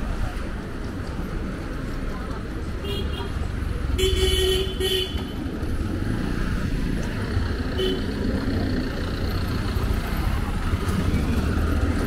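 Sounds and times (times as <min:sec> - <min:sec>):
traffic engines rumbling: 0:00.0 - 0:12.0.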